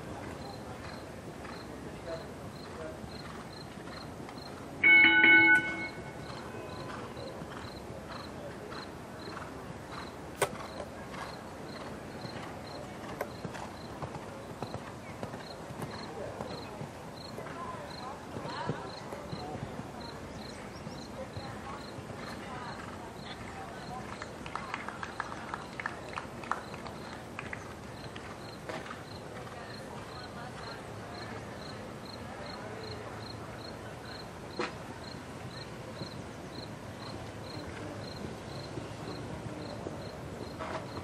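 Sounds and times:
steady background noise: 0:00.0 - 0:41.0
cricket chirping: 0:31.6 - 0:40.1.

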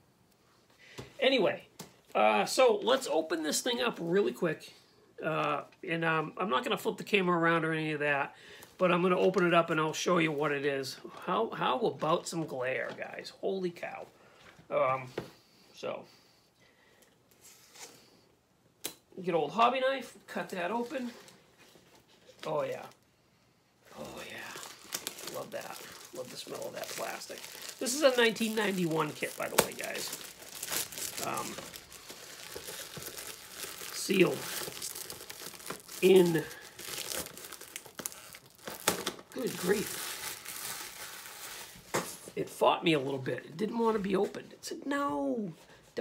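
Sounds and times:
plastic shrink-wrap crinkling: 0:23.9 - 0:42.0
hands rustling plastic box: 0:24.0 - 0:42.2.

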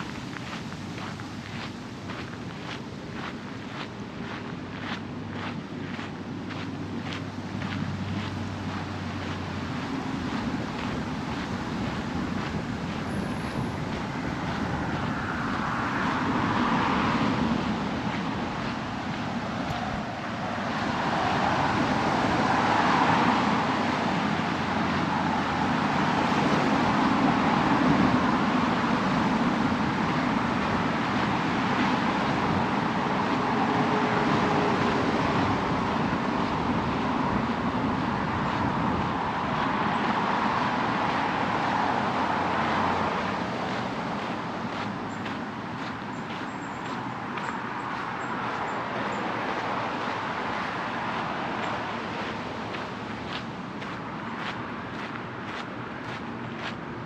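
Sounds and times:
passing cars traffic noise: 0:00.0 - 0:57.0.

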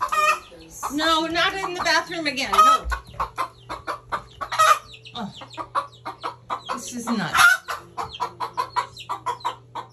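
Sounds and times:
hen clucking: 0:00.0 - 0:09.9.

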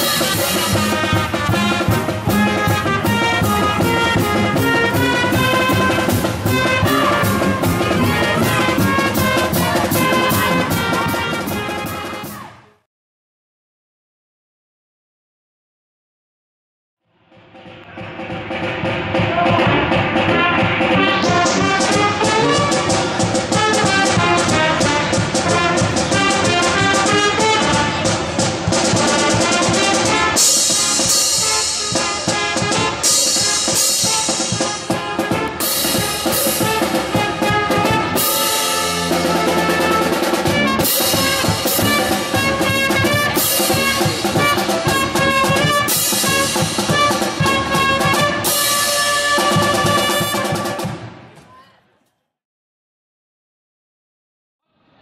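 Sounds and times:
pep band playing: 0:00.0 - 0:12.5, 0:17.9 - 0:51.2.

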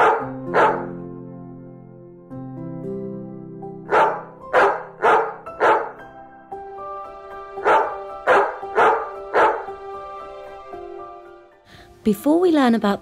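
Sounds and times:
dog barking: 0:00.0 - 0:01.0, 0:03.9 - 0:06.0, 0:07.6 - 0:09.7
background music with sustained tones: 0:00.0 - 0:13.0.

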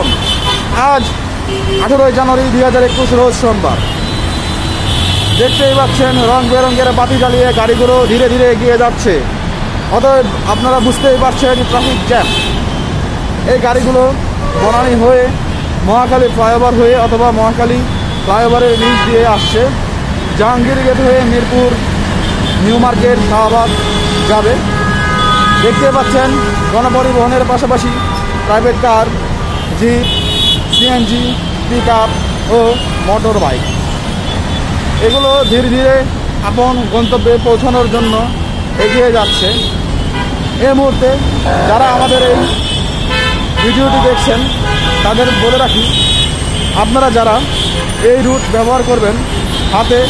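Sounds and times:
road traffic noise: 0:00.0 - 0:50.0
person speaking: 0:20.4 - 0:21.9, 0:22.6 - 0:24.7, 0:25.6 - 0:30.1, 0:40.6 - 0:42.7, 0:43.6 - 0:46.0.

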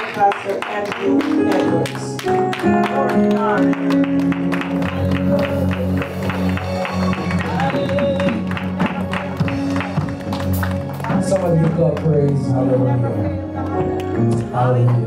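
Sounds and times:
church praise music: 0:00.0 - 0:15.0.

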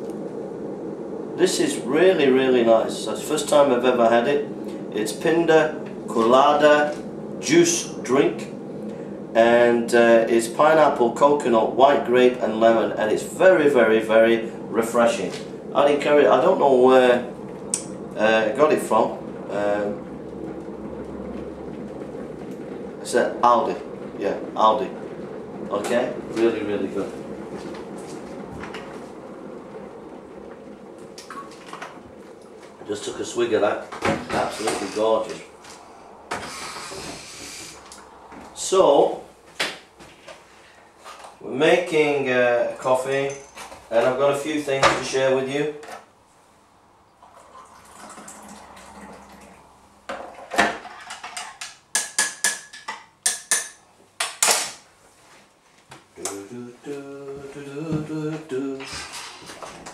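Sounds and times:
electric kettle boiling: 0:00.0 - 0:39.4, 0:47.1 - 0:50.9
water pouring into mug: 0:47.2 - 0:49.6.

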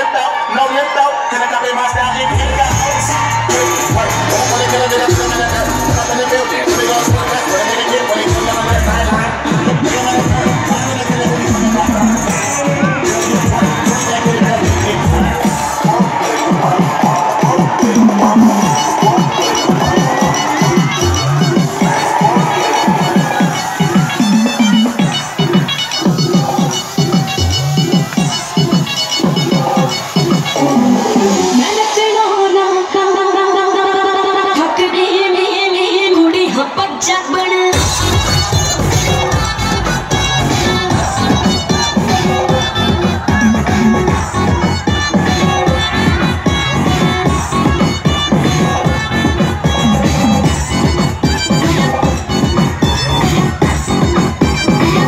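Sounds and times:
electronic dance music: 0:00.0 - 0:55.0.

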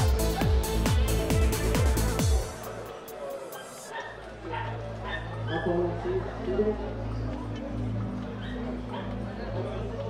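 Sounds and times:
dog barking: 0:03.5 - 0:05.8, 0:08.4 - 0:09.2.

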